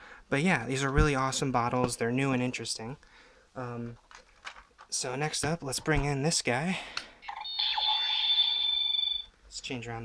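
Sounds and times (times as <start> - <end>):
high electronic tone: 7.3 - 9.3.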